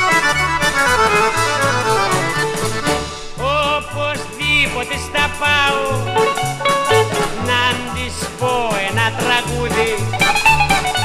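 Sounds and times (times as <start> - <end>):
wavering lead melody: 0.0 - 3.7, 5.9 - 7.5
plucked strings: 0.0 - 11.0
stepping bass line: 0.0 - 11.0.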